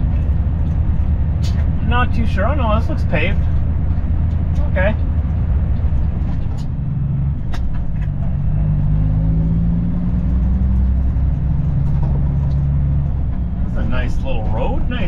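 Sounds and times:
diesel truck engine droning: 0.0 - 15.0
road noise: 0.0 - 15.0.

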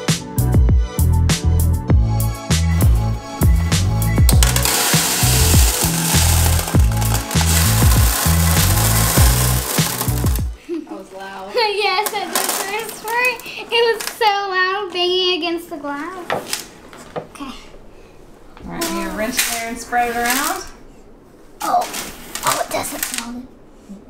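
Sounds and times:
music with steady beat: 0.0 - 10.6
rocks poured into glass tank: 4.3 - 10.6, 11.6 - 14.3.

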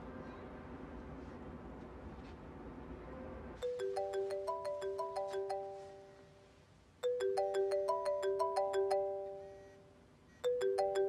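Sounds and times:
mobile phone ringtone: 3.6 - 11.0.

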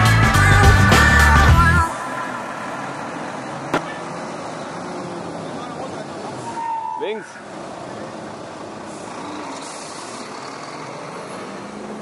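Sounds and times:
heavy truck engine running: 0.0 - 12.0
tyres on wet road: 0.0 - 12.0.

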